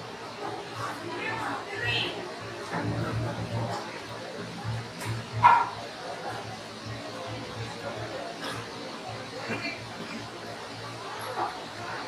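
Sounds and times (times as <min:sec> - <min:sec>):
dog barking: 0:05.4 - 0:05.8.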